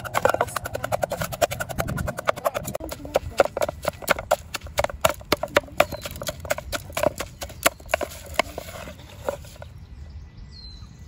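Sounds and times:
pestle pounding in metal pot: 0.0 - 8.8.

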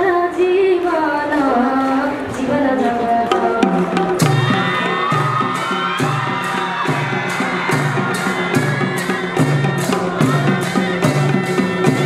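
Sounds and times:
barrel drum beating: 3.3 - 12.0.

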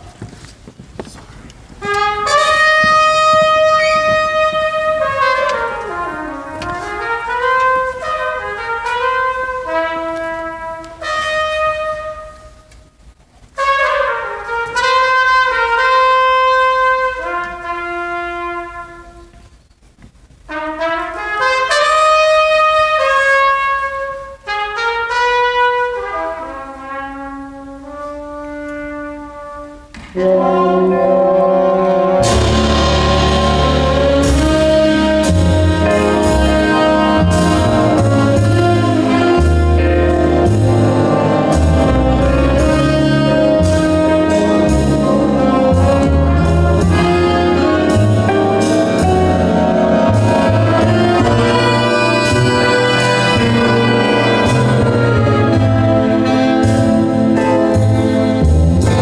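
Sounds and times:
jazz big band brass chords: 1.7 - 19.5, 20.4 - 59.0.

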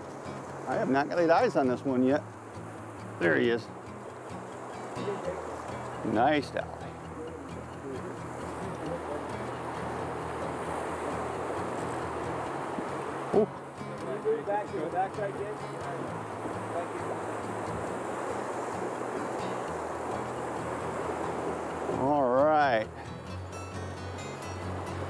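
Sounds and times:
river current rushing: 0.0 - 25.0.

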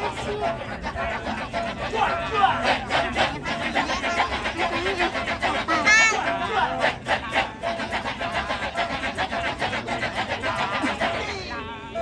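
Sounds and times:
chorus of men chanting: 0.0 - 11.4.

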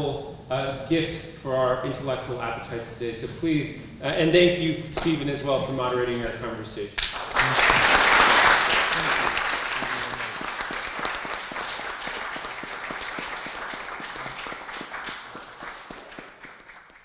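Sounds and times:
audience applauding: 7.0 - 17.0.

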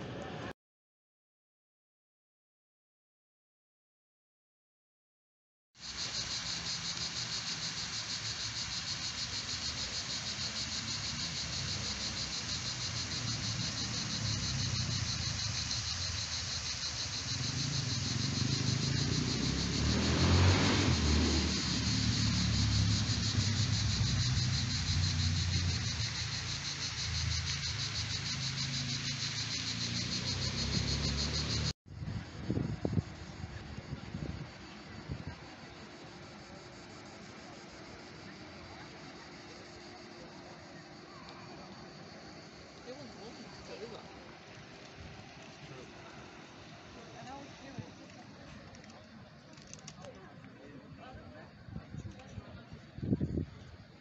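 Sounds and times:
cicadas buzzing: 5.8 - 54.0.

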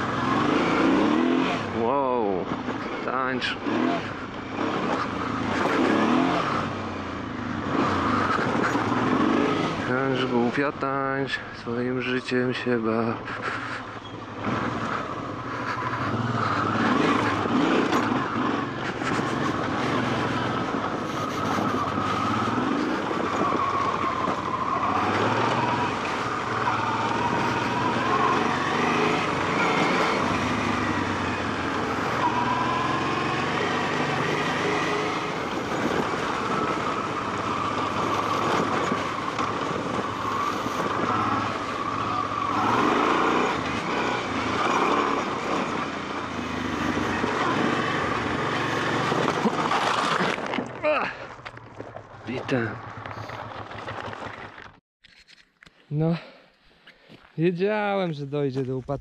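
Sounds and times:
motorcycle engine running: 13.1 - 54.8.

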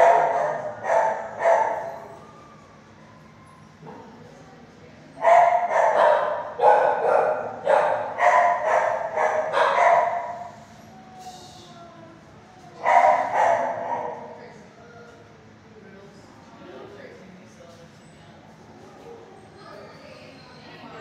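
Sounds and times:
dog barking: 0.0 - 2.1, 5.2 - 10.6, 12.8 - 14.4.

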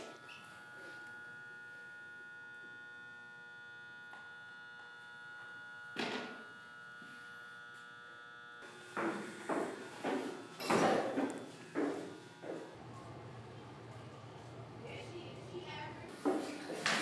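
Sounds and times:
steady buzzing hum: 0.0 - 17.0.

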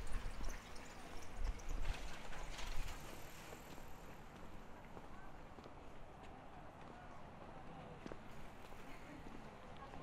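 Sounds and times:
quiet city street ambience: 0.0 - 10.0.

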